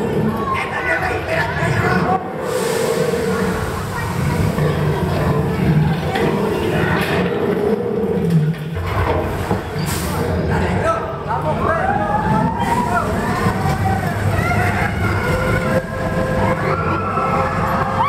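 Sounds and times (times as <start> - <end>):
roller coaster rumbling on track: 0.0 - 18.0.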